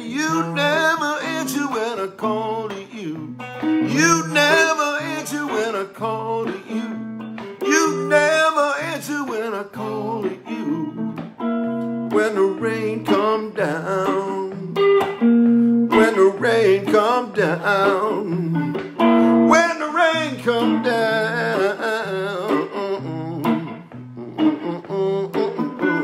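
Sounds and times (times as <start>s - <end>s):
fingerpicked acoustic guitar: 0.0s - 26.0s.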